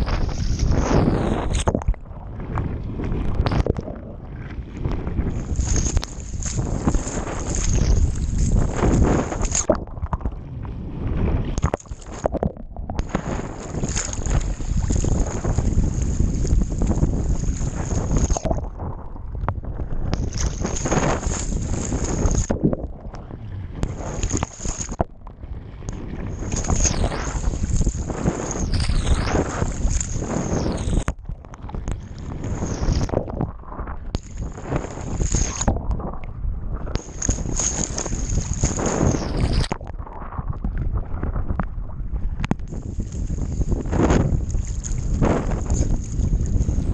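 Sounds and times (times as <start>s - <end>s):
sea water splashing: 0.0s - 46.9s
wind buffeting microphone: 0.0s - 46.9s.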